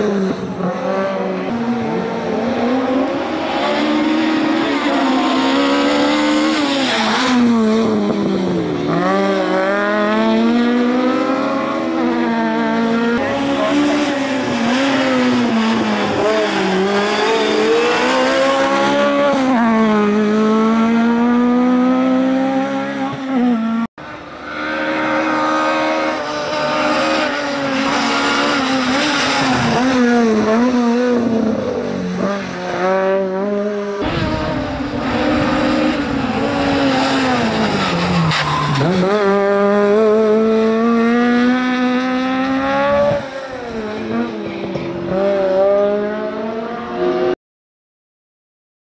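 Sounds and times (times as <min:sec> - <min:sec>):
race car engine revving hard: 0:00.0 - 0:47.4.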